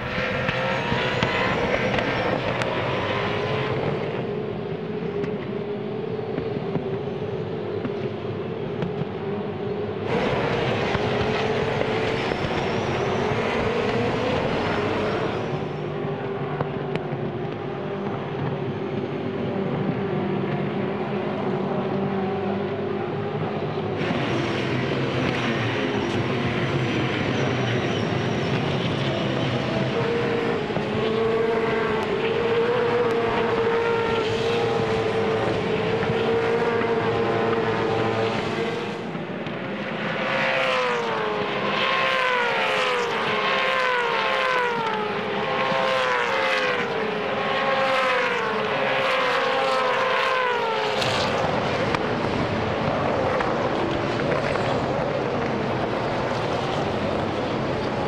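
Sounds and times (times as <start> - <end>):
race cars passing by: 0.0 - 58.0
racing car engines: 0.0 - 58.0.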